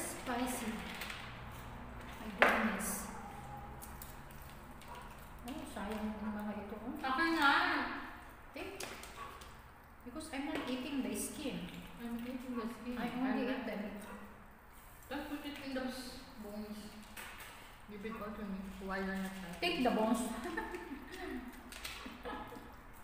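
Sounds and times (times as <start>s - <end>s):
people talking: 0.0s - 0.9s, 2.2s - 3.1s, 5.4s - 8.0s, 15.1s - 16.9s, 17.9s - 21.5s.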